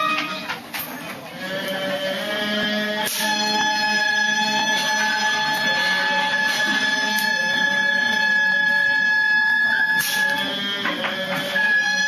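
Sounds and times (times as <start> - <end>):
low sustained drone: 1.7 - 12.0
wind instrument holding high note: 2.6 - 12.0.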